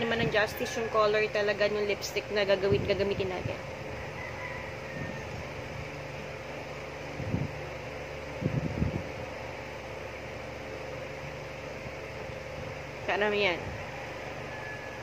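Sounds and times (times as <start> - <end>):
fan humming: 0.0 - 15.0.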